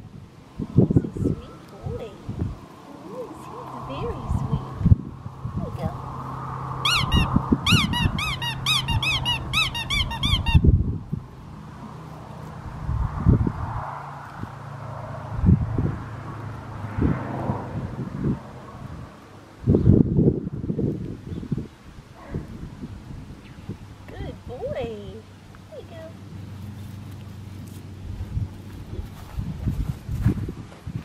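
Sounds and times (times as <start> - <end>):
wind on microphone: 0.0 - 25.3, 27.8 - 31.0
rapid high squeaks: 6.8 - 10.6.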